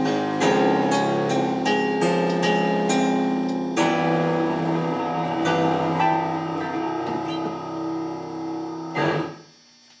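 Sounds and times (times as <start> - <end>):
piano chords: 0.0 - 9.5.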